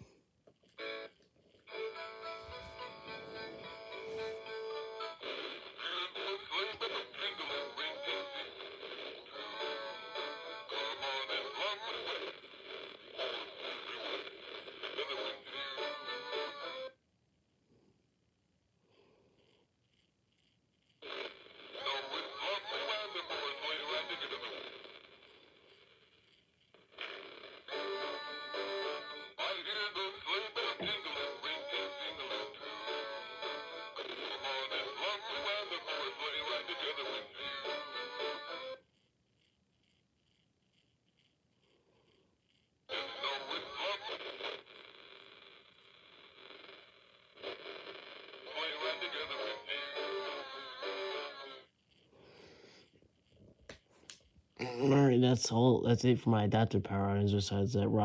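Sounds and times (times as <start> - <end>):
tinny toy speaker singing: 1.7 - 12.4, 14.9 - 17.0, 21.7 - 24.6, 27.6 - 38.8, 42.9 - 44.6, 48.4 - 51.7.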